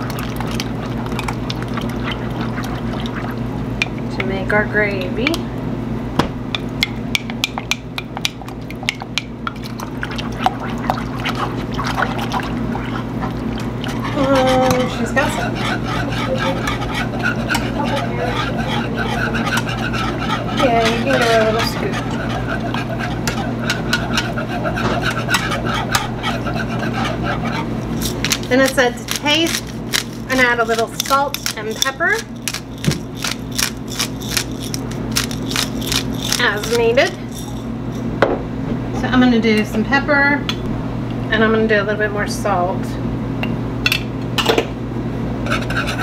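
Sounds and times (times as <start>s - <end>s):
steady low hum: 0.0s - 46.0s
whisk scraping metal saucepan: 10.2s - 38.1s, 45.4s - 46.0s
indistinct voices: 13.9s - 25.2s.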